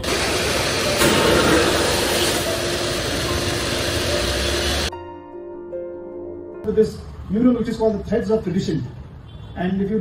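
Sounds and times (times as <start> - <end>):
confetti blower rushing hiss: 0.0 - 4.9.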